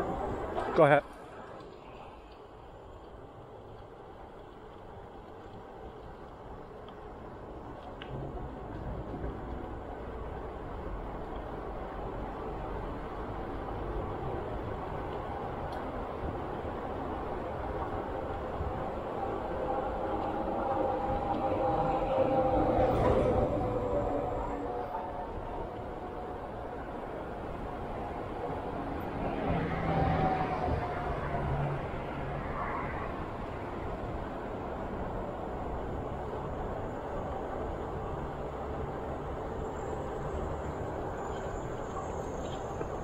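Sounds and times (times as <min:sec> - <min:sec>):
bicycle tyres rolling on asphalt: 0:00.0 - 0:43.0
wind buffeting microphone: 0:02.5 - 0:43.0.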